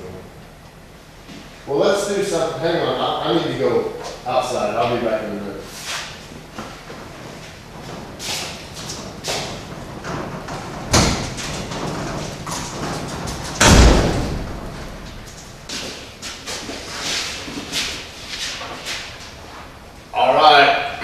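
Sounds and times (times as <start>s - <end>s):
heavy thumps with echo: 9.1s - 15.8s.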